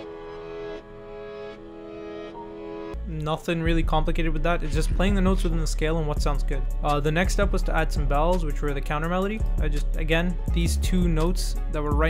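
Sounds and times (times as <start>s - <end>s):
slow dark piano melody: 0.0s - 3.1s.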